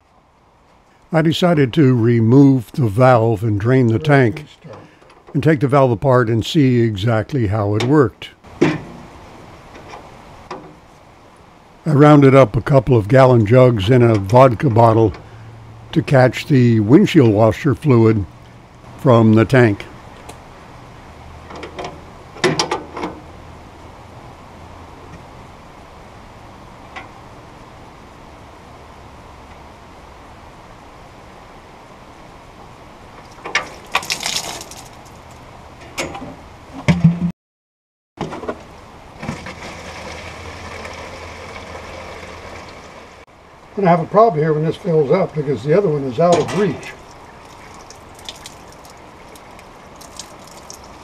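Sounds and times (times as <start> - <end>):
fluid pouring into plastic jug: 33.8 - 34.9, 47.0 - 51.0.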